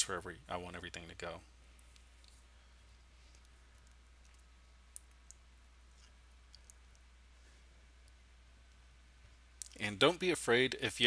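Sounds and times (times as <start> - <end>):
low steady hum: 0.0 - 11.0
faint sharp clicks: 3.3 - 5.4.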